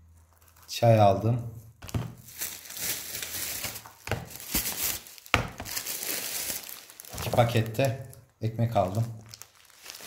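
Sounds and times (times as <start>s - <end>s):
plastic bag rustling: 1.6s - 10.0s.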